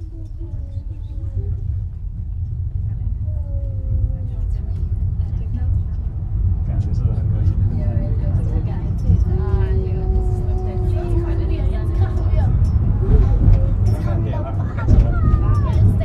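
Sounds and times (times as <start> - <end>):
faint voices: 0.0 - 16.0
wheels rumbling on rails: 0.0 - 16.0.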